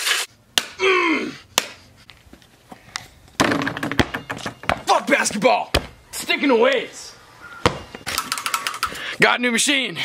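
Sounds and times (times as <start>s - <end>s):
rubber ball bouncing on pavement: 1.6s - 4.9s, 5.7s - 6.0s, 7.6s - 8.9s.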